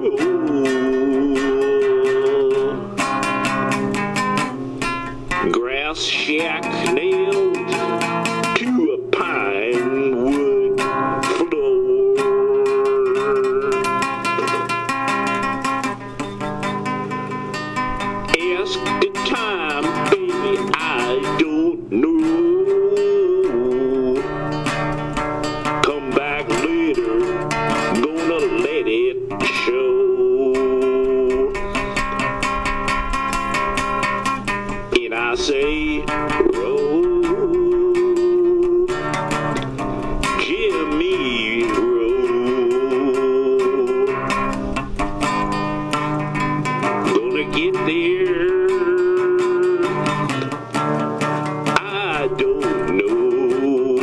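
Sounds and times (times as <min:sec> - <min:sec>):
acoustic guitar music: 0:00.0 - 0:54.0.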